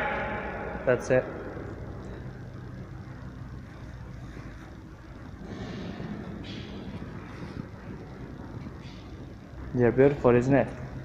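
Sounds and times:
machinery hum and rushing: 0:00.0 - 0:11.0.

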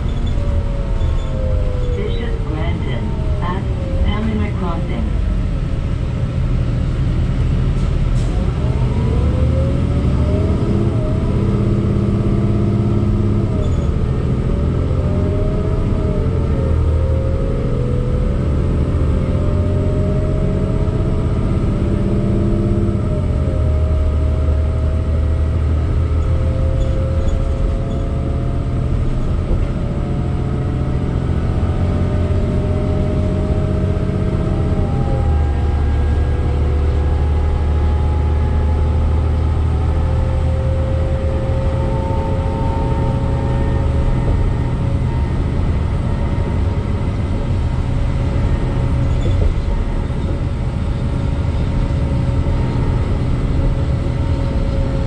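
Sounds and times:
bus engine accelerating with gear shifts: 0:00.0 - 0:55.0.

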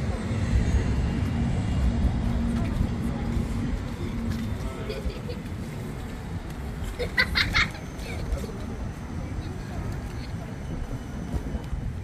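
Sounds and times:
low engine hum: 0:00.0 - 0:12.0
road traffic rumble: 0:00.0 - 0:12.0.

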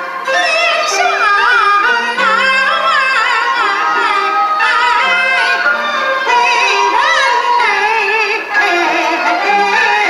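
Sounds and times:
woman singing opera with vibrato: 0:00.0 - 0:10.0.

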